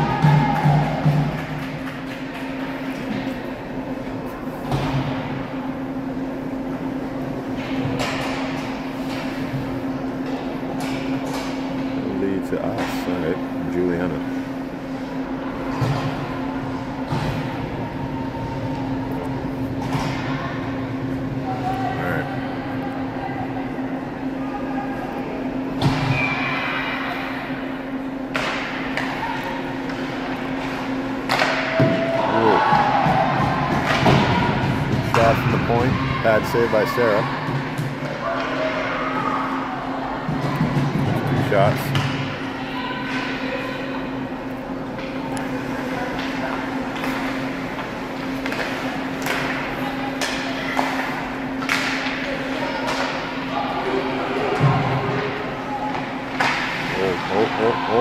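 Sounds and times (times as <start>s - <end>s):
steady low hum: 0.0s - 58.0s
hockey sticks and puck clacking: 0.2s - 3.4s, 7.6s - 11.9s, 28.3s - 35.9s, 44.8s - 53.5s, 55.9s - 57.0s.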